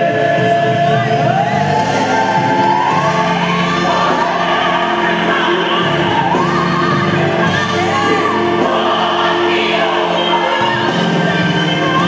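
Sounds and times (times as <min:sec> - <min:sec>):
choir singing gospel song: 0:00.0 - 0:12.0.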